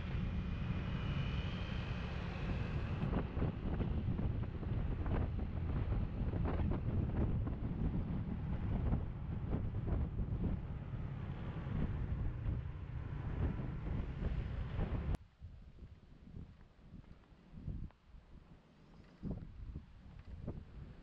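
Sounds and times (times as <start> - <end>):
wind rushing over microphone: 0.0 - 18.5, 19.1 - 21.0.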